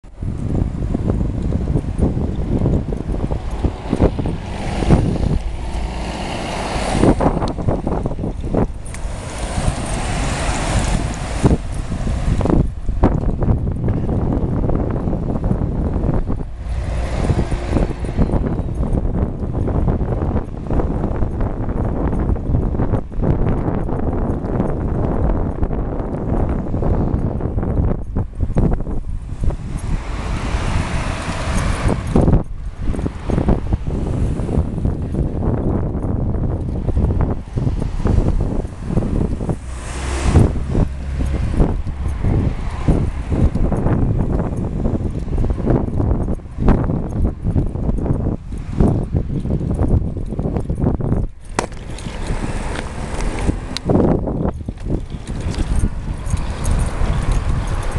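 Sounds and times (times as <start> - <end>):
road traffic passing: 0.0 - 57.9
wind rumbling on microphone: 0.0 - 57.9.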